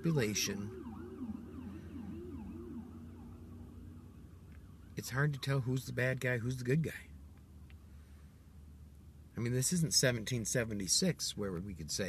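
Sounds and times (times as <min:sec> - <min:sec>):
distant siren wailing: 0:00.0 - 0:06.6.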